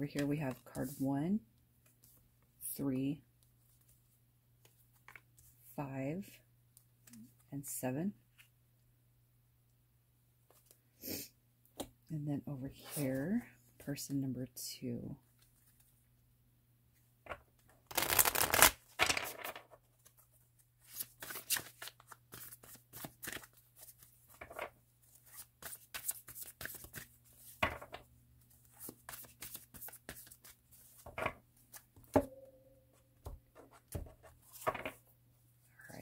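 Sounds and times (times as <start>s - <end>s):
cards shuffling: 17.9s - 20.2s, 20.8s - 28.0s, 28.6s - 31.8s.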